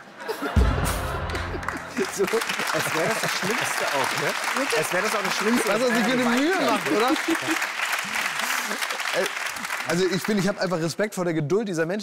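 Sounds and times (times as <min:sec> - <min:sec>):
audience applauding: 0:00.6 - 0:11.0.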